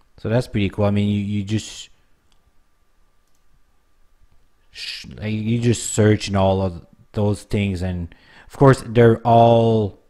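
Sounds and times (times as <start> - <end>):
computer mouse clicks: 3.2 - 3.5.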